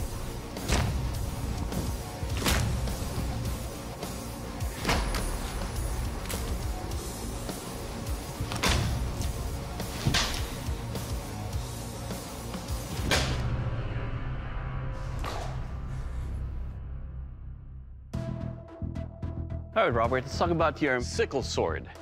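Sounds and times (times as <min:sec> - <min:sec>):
dramatic music: 0:00.0 - 0:21.1.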